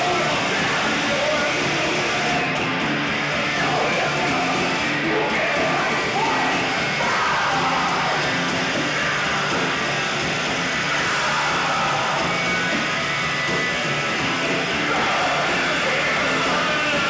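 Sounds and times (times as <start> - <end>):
distorted electric guitar: 0.0 - 17.0
drums: 0.0 - 17.0
singer shouting into microphone: 3.5 - 8.5, 14.8 - 17.0.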